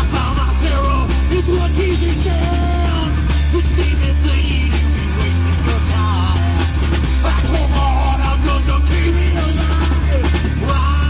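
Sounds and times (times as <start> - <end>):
bass guitar: 0.0 - 11.0
distorted electric guitar: 0.0 - 11.0
drum kit with crashing cymbals: 0.0 - 11.0.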